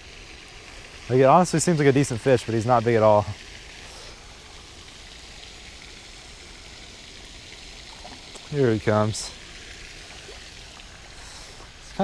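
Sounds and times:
water pattering onto pond: 0.0s - 12.0s.

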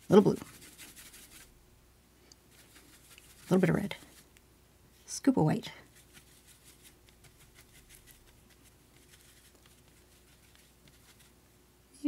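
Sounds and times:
paintbrush scratching on paper plate: 0.0s - 1.6s, 2.5s - 4.3s, 5.8s - 11.4s.

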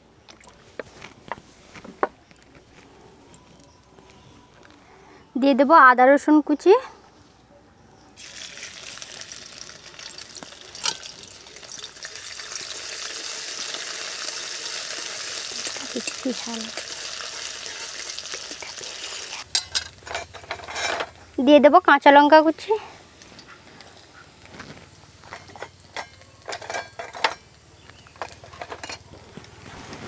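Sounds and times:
ginger and garlic sizzling in oil: 8.2s - 21.2s.

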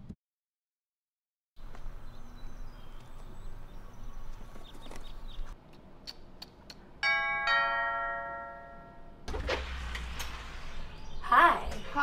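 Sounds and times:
two-tone doorbell chime: 7.0s - 9.2s.

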